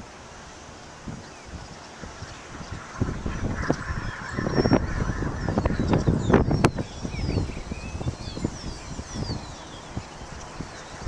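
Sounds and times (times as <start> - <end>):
gusty wind buffeting microphone: 0.0 - 11.0.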